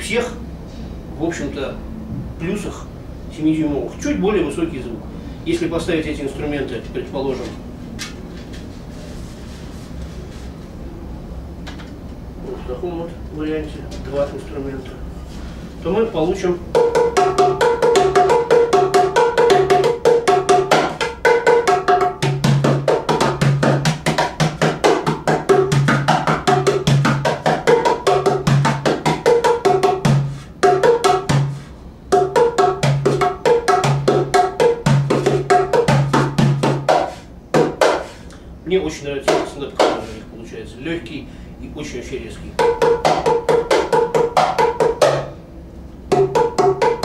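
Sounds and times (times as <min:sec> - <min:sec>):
clay pot drums played by hand: 0:16.7 - 0:38.2, 0:39.3 - 0:40.1, 0:42.5 - 0:45.4, 0:46.1 - 0:47.0.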